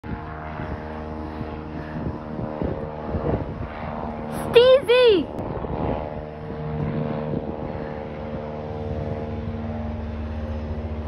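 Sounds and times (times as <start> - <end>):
propeller plane engine droning: 0.0 - 11.0.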